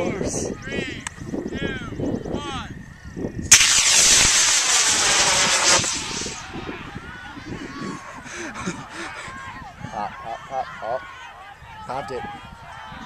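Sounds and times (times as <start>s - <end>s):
rocket motor whoosh and hiss: 3.5s - 6.5s.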